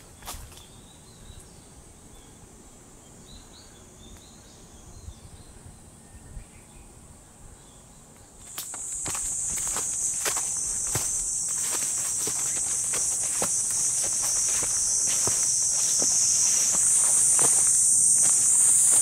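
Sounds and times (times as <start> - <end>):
footsteps on forest trail: 0.0 - 0.7, 8.4 - 19.0
cicada buzzing: 8.4 - 19.0.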